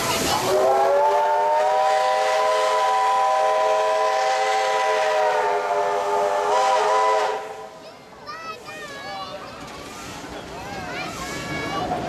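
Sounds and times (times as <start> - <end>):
steam locomotive whistle blast: 0.4 - 7.8.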